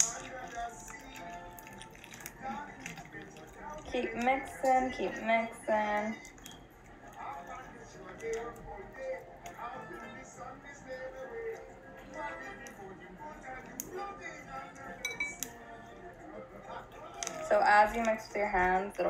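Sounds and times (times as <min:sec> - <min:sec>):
faint background music: 0:00.0 - 0:19.0.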